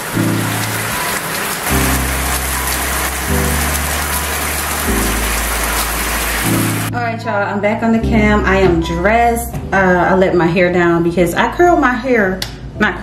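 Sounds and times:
shower water spraying: 0:00.0 - 0:06.9
music of low sustained chords: 0:01.7 - 0:12.0.

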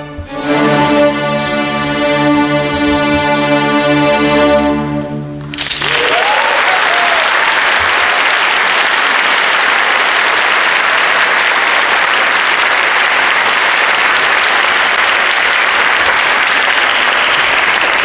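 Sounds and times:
audience applauding: 0:05.4 - 0:18.0.

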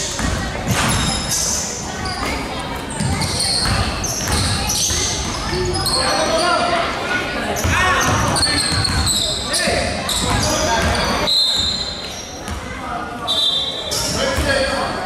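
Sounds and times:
players' voices echoing: 0:00.0 - 0:15.0
sneakers squeaking: 0:00.0 - 0:15.0.

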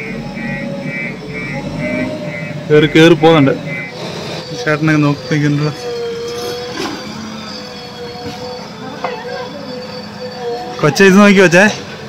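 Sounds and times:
diesel engine humming: 0:00.0 - 0:12.0.

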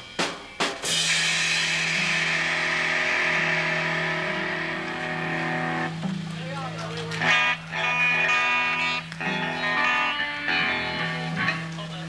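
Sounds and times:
ringing cymbals: 0:00.0 - 0:06.0
drum hits: 0:00.0 - 0:11.7
loud held guitar chord: 0:00.9 - 0:06.0, 0:07.2 - 0:12.0
sustained bass note: 0:00.9 - 0:06.1.

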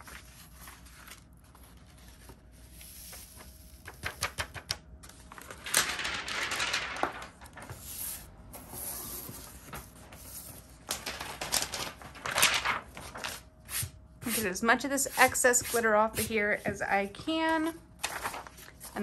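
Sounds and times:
paper rustling: 0:00.0 - 0:14.4, 0:18.0 - 0:19.0.

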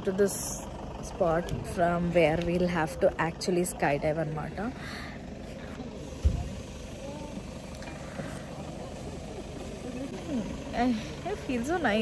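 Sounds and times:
low outdoor rumble: 0:00.0 - 0:12.0
faint voices: 0:01.1 - 0:12.0.

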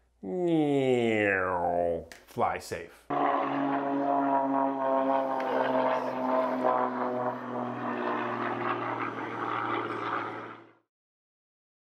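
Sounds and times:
propeller plane engine drone: 0:03.1 - 0:10.9.

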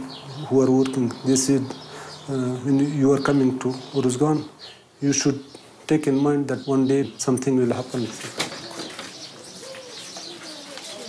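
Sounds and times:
dove cooing: 0:08.1 - 0:11.0.

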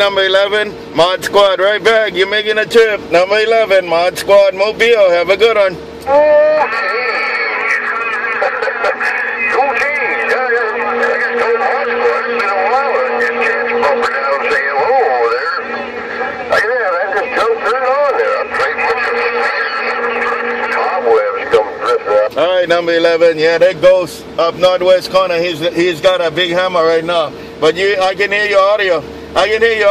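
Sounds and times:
steady whining tones: 0:00.0 - 0:29.9
garbled voices over cb radio: 0:06.1 - 0:22.4.

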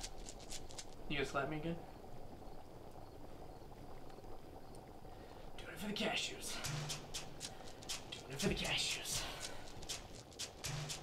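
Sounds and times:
low steady hiss: 0:00.0 - 0:11.0
faint ticks: 0:03.8 - 0:04.9.

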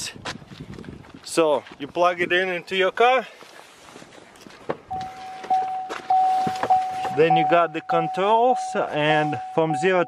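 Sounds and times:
light knocks and footsteps: 0:00.2 - 0:07.4
vehicle warning chime: 0:04.9 - 0:10.0.

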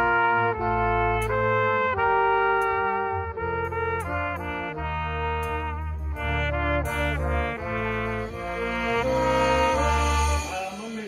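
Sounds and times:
bass line: 0:00.0 - 0:11.0
big band brass playing: 0:00.0 - 0:11.0.

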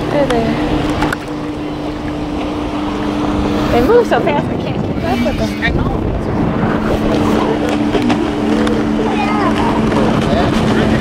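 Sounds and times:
outboard motor running: 0:00.0 - 0:11.0
water rushing past hull: 0:00.0 - 0:11.0
wind rushing: 0:00.8 - 0:11.0.

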